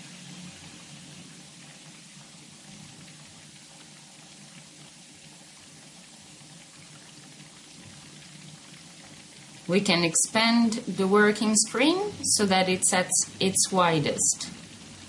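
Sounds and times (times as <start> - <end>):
faint recording hiss: 0.0 - 15.0.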